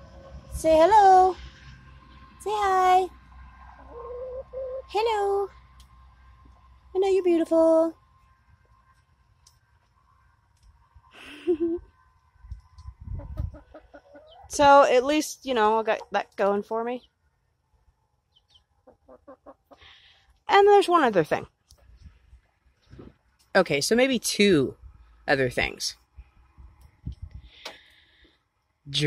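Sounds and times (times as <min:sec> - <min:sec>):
hen clucking: 0:03.6 - 0:04.9, 0:13.1 - 0:14.6, 0:15.6 - 0:16.3, 0:18.3 - 0:20.0
hen crooning: 0:03.6 - 0:05.0.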